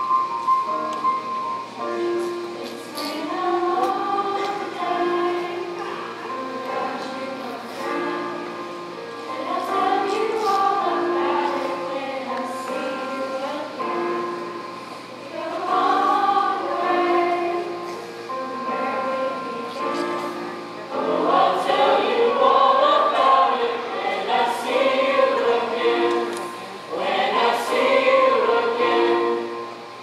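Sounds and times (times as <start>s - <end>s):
mixed chorus singing: 2.0s - 30.0s.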